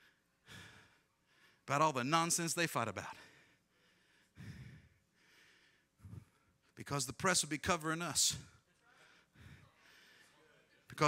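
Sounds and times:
man drawing breath: 0.0 - 1.6, 3.2 - 6.6, 8.9 - 10.4
man speaking: 1.7 - 3.3, 6.8 - 8.7.

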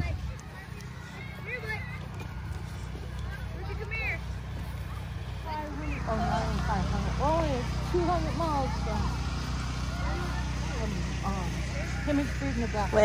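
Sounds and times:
people talking: 0.0 - 9.2, 9.8 - 13.0
children calling: 0.0 - 13.0
low mechanical hum: 0.0 - 13.0.

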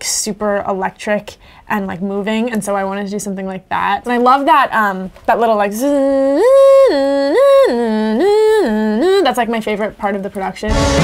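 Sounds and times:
person singing wordless notes: 5.8 - 9.3.

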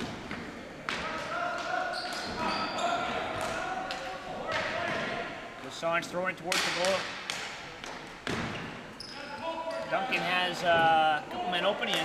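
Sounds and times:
hockey sticks clacking ball: 6.3 - 8.7, 9.7 - 12.0.

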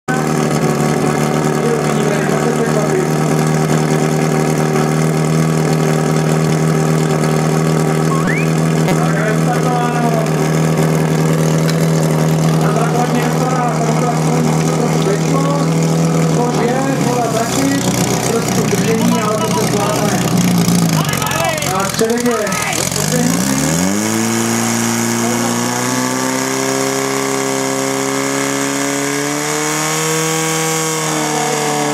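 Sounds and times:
pump engine running at high revs: 0.1 - 31.9.

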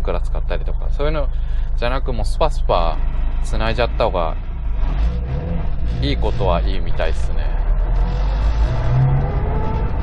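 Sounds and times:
car engine accelerating: 0.0 - 10.0
low road rumble: 0.0 - 10.0.

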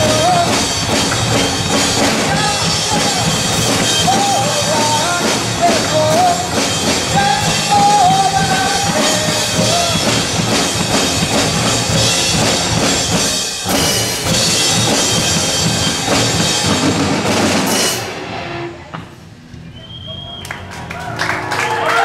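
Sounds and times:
live rock band playing: 0.0 - 18.9
drum kit: 0.0 - 19.3
people clapping: 20.2 - 22.0.

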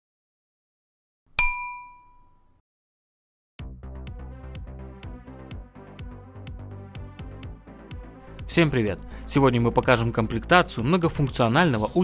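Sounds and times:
synthetic bell-like chime: 1.4 - 2.3.

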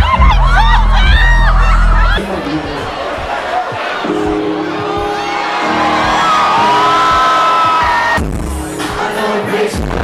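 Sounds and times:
crowd whooping: 0.0 - 8.3
loud dance music: 0.0 - 10.0.

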